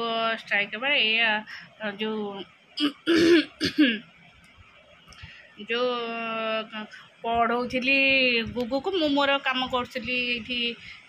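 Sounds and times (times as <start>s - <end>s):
woman clearing throat and coughing: 2.8s - 4.0s.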